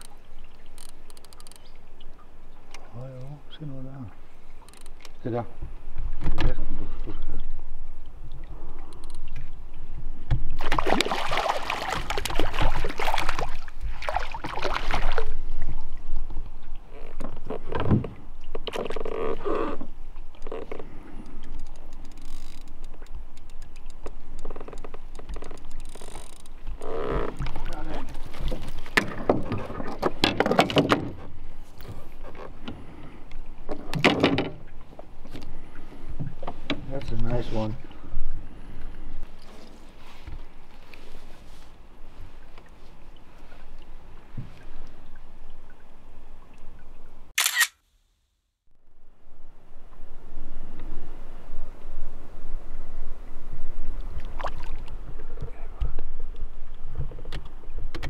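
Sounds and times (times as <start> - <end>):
water splashing beside a boat: 0.0 - 47.3, 49.5 - 58.0
fish thrashing at the surface: 10.6 - 15.3.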